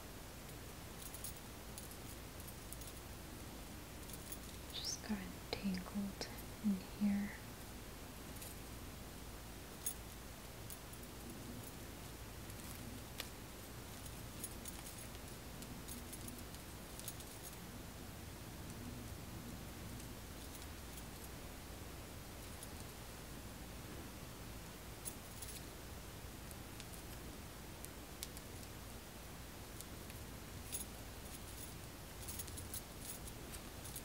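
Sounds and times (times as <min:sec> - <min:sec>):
soft rustling of doll hair: 0:00.4 - 0:08.8, 0:09.7 - 0:17.8
metal bracelet clinking: 0:00.5 - 0:03.1, 0:04.0 - 0:05.1, 0:12.4 - 0:17.6, 0:19.9 - 0:21.3, 0:22.4 - 0:23.0, 0:25.0 - 0:25.7, 0:29.8 - 0:34.0.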